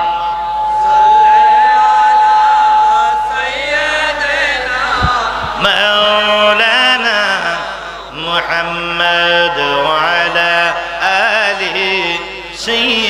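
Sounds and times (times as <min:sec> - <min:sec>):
man chanting through loudspeakers: 0:02.8 - 0:13.0.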